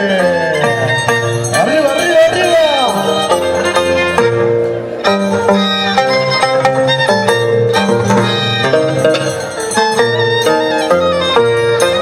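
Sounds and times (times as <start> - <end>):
plucked harp notes: 0.0 - 12.0
violin melody: 0.0 - 12.0.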